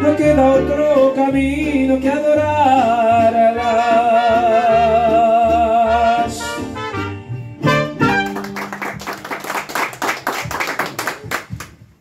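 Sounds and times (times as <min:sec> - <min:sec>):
mariachi band playing: 0:00.0 - 0:11.6
people clapping: 0:08.0 - 0:12.0.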